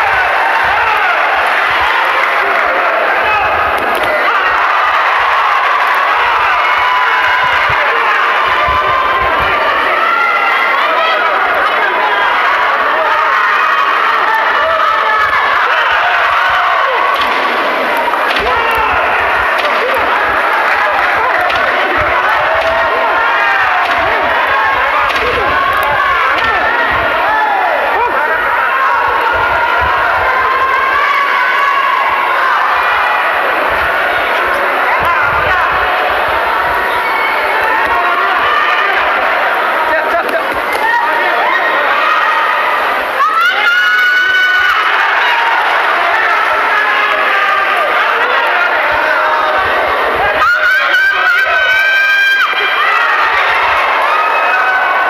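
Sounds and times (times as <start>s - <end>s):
crowd shouting and cheering: 0.0s - 55.0s.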